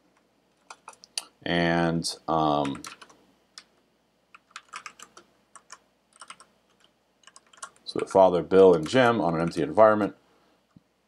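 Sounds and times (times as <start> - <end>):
computer keyboard typing: 0.5 - 1.2, 2.6 - 3.7, 4.3 - 9.7.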